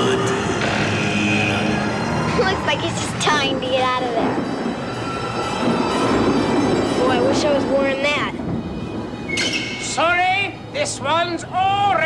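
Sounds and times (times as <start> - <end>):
eerie effects: 0.0 - 10.8
steady rumbling noisy wash: 0.0 - 12.0.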